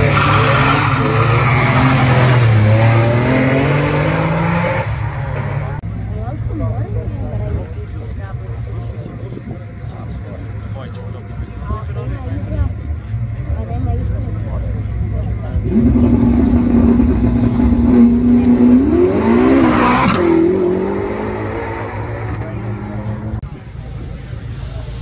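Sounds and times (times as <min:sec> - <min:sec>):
sports car engine revving: 0:00.0 - 0:05.8, 0:15.5 - 0:23.4
crowd chatter: 0:00.0 - 0:25.0.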